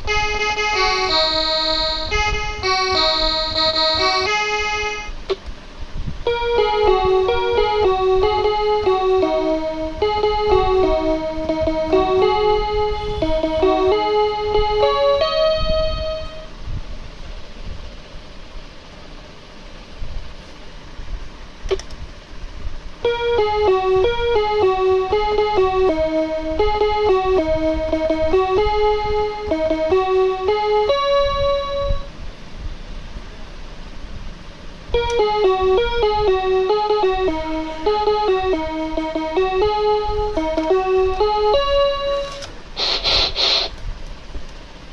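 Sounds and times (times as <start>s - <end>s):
toy electronic keyboard melody: 0.0s - 5.4s, 6.2s - 16.5s, 23.0s - 32.1s, 34.9s - 43.7s
click: 21.7s - 22.0s.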